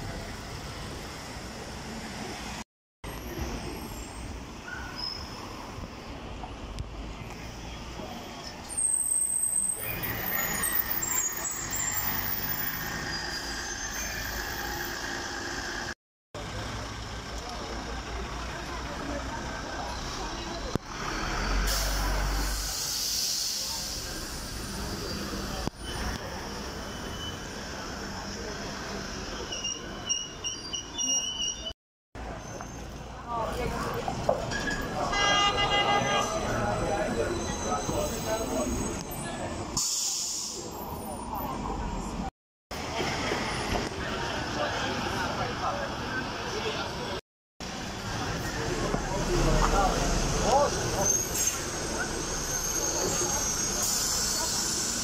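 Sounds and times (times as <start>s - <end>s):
buses in street traffic: 0.0s - 55.0s
brake squeal: 3.1s - 5.8s, 7.3s - 16.0s, 19.4s - 33.4s, 34.5s - 42.2s, 47.7s - 55.0s
compressed air hiss: 21.6s - 24.3s.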